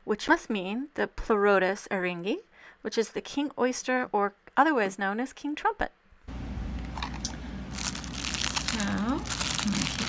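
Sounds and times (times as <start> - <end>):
plastic bag crinkling: 6.9 - 10.0.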